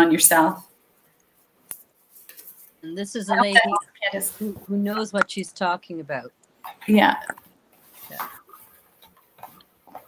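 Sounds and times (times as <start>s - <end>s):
woman speaking: 0.0s - 0.6s, 2.8s - 7.4s.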